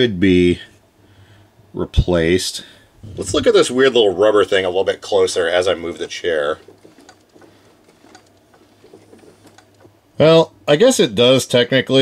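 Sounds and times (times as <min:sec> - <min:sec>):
wheelchair motor plate clicking: 0:06.4 - 0:10.0.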